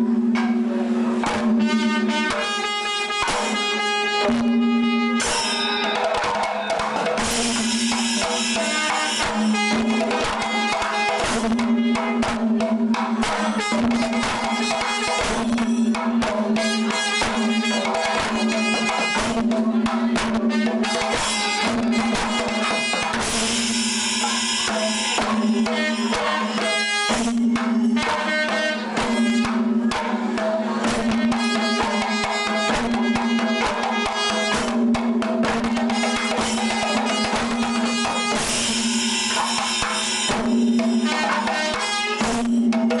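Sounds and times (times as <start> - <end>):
steady low tone: 0.0 - 2.1
cymbals: 0.0 - 43.0
hand drums struck quickly: 0.0 - 43.0.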